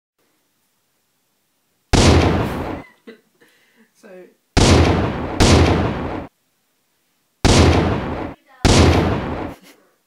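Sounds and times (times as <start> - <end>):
gunshot bang: 2.0 - 2.8, 4.6 - 6.3, 7.4 - 9.6.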